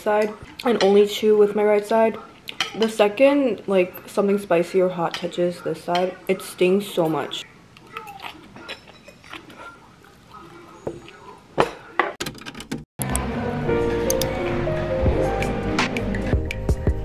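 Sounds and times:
quiet chewing: 7.7s - 11.4s
background music with low bass: 13.0s - 17.0s.

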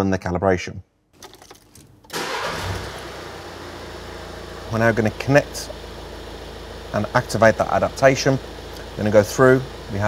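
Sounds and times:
car engine starting and idling: 1.2s - 10.0s.

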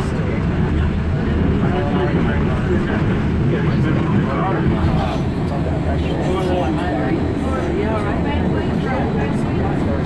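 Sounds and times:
train wheels rumbling in tunnel: 0.0s - 10.0s.

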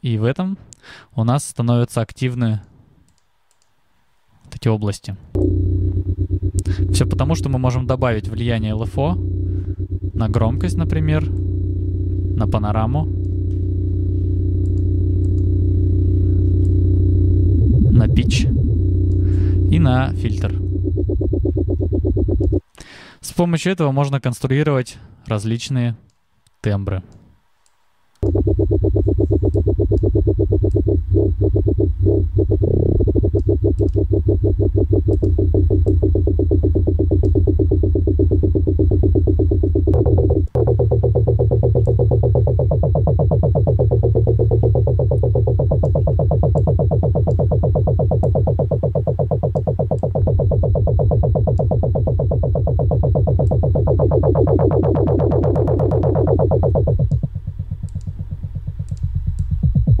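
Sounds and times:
pulsing synth bass: 5.4s - 22.7s, 28.2s - 60.0s.

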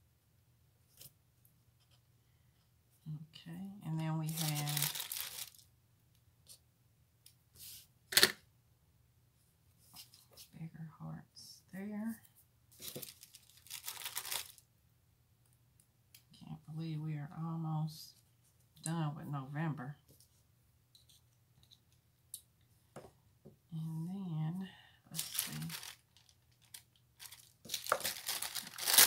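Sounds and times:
paper tearing rustles: 4.2s - 5.6s, 12.8s - 14.6s, 25.2s - 29.0s.

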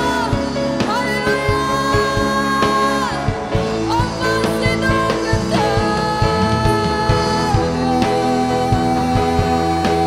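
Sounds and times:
band playing with steady beat: 0.0s - 10.0s
man singing: 0.0s - 10.0s
woman singing: 0.0s - 10.0s.

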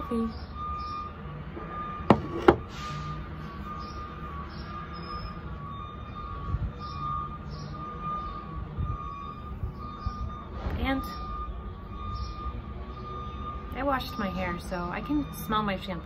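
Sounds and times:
truck engine rumble: 0.0s - 16.0s
truck reversing alarm beeping: 0.0s - 16.0s
sharp knocks: 2.1s - 2.7s.

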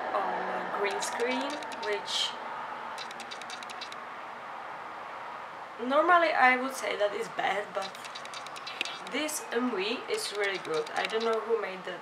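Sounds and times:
light sharp clicks: 0.9s - 2.0s, 3.0s - 4.0s, 7.8s - 9.2s, 10.3s - 11.4s.

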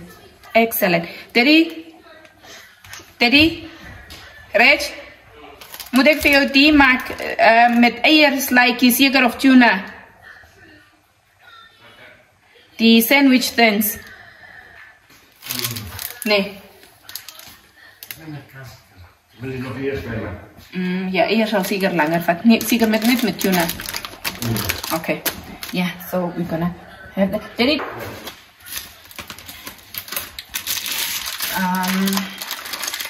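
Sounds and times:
plastic wrapping rustling: 5.3s - 8.3s, 15.1s - 18.5s, 21.4s - 26.2s, 27.6s - 33.0s.

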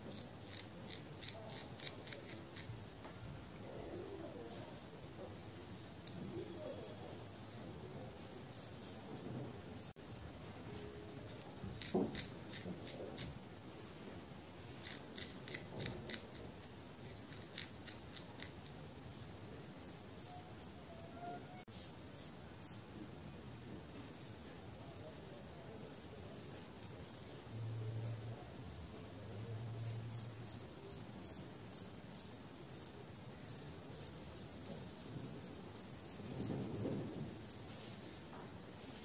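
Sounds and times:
nails scratching hair: 0.0s - 9.2s, 9.8s - 13.9s, 14.6s - 23.0s, 24.2s - 38.2s.

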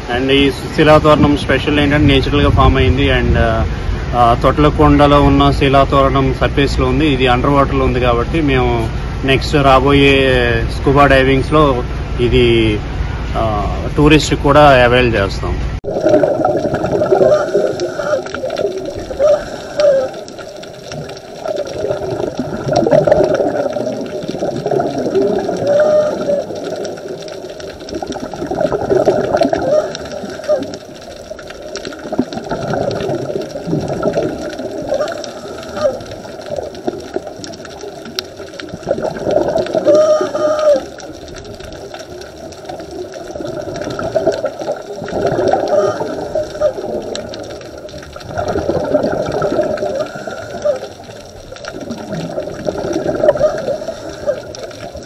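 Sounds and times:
bubbles gurgling: 15.8s - 55.0s
diver breathing through regulator: 17.2s - 18.4s, 19.2s - 20.2s, 49.8s - 50.9s, 53.4s - 54.5s.

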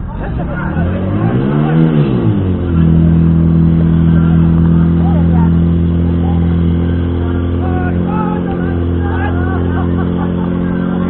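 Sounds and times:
fire pump engine running: 0.0s - 11.0s.

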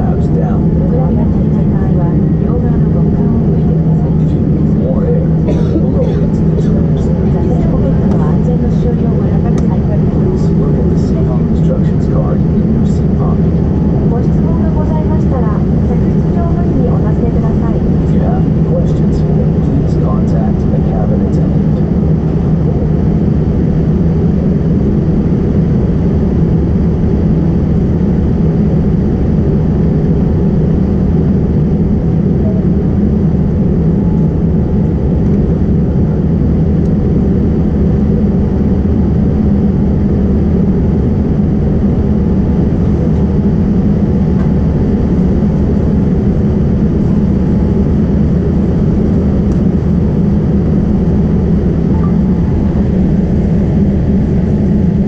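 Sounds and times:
airliner cabin hum: 0.0s - 55.0s.

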